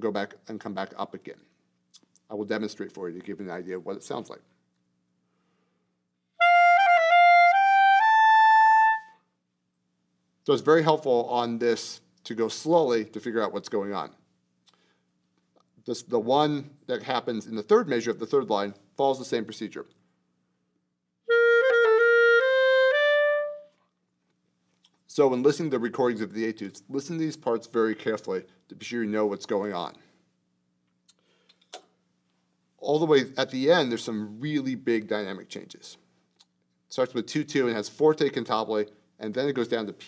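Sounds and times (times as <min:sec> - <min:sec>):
clarinet melody: 0:06.4 - 0:09.2, 0:21.2 - 0:23.8.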